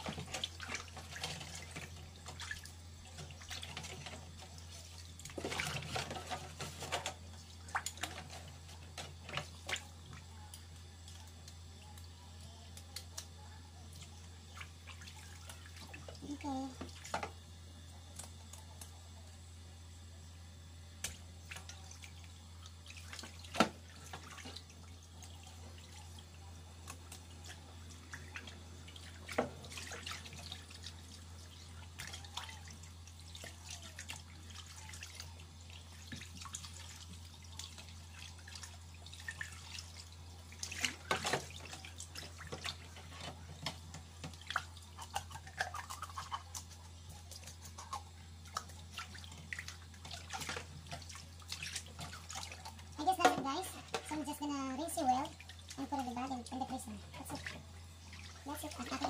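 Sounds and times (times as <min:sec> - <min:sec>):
water splashing in a sink: 0:00.0 - 0:19.4, 0:20.8 - 0:59.0.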